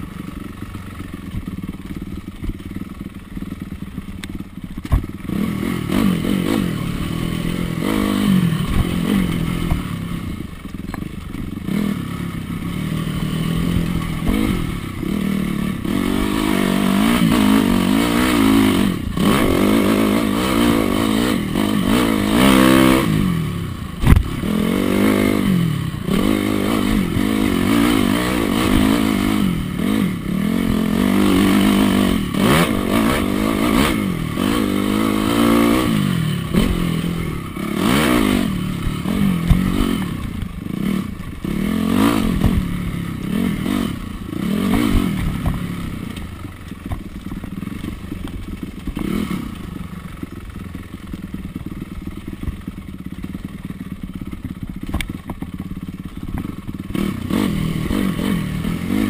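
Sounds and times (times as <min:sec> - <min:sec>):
dirt bike engine revving: 0:04.7 - 0:47.0, 0:48.6 - 0:50.7, 0:56.0 - 0:59.0.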